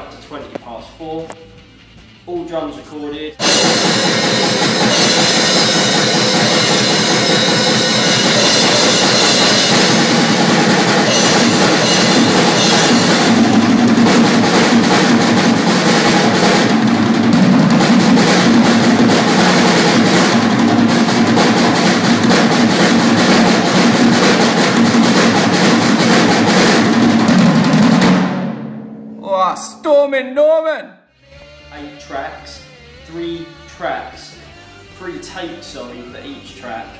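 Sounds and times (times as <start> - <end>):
cymbal wash: 3.4 - 26.9
drum kit playing: 3.4 - 30.5
man speaking: 29.2 - 31.0.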